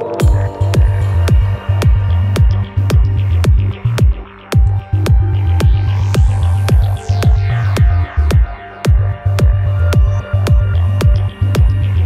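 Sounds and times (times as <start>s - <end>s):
downtempo electronic music: 0.0s - 12.0s
high filtered sweep: 0.0s - 12.0s
throbbing sub-bass: 0.0s - 12.0s
deep kick drum: 0.2s - 12.0s.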